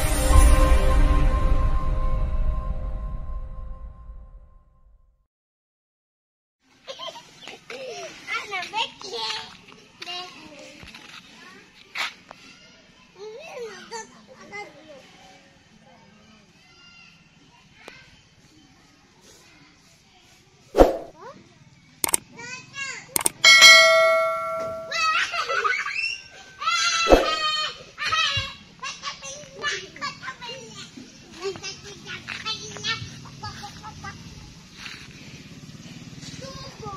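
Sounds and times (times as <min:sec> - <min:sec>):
children talking and calling out: 0:06.8 - 0:20.6, 0:21.2 - 0:36.9
children shouting at play: 0:16.4 - 0:18.2, 0:24.2 - 0:34.4, 0:36.2 - 0:36.9.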